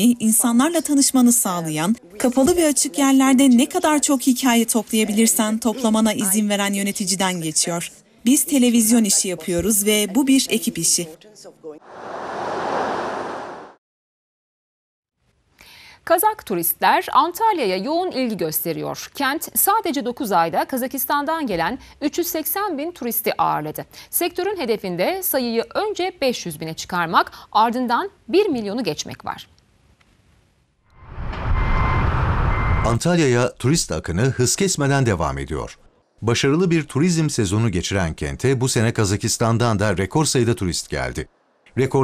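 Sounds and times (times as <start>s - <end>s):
jet engines roaring: 11.8s - 13.8s.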